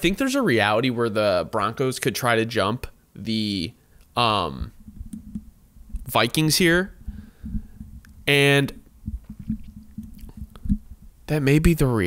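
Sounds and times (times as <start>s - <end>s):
soft low thumps: 4.6s - 11.3s.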